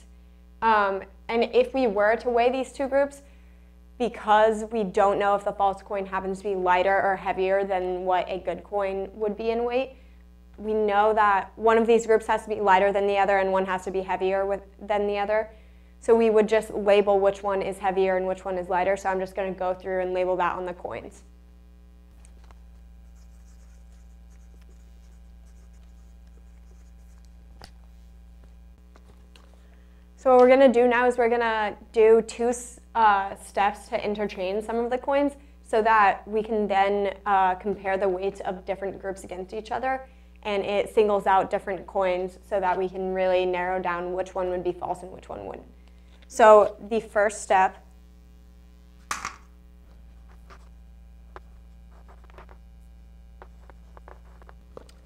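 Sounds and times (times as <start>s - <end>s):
low electrical hum: 0.0s - 55.0s
marker pen scratching on paper: 22.2s - 28.1s, 51.9s - 52.5s, 53.4s - 54.6s
chalk writing on blackboard: 22.7s - 27.4s.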